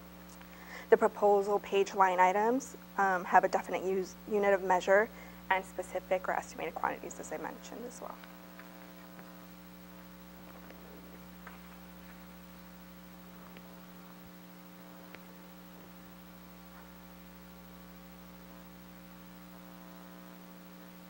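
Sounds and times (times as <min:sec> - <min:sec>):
electrical mains hum: 0:00.0 - 0:21.0.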